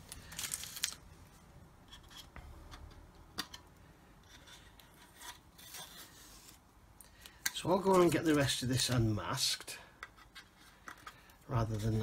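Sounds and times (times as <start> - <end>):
tape rustling and scratching: 0.0 - 1.1, 1.8 - 12.0.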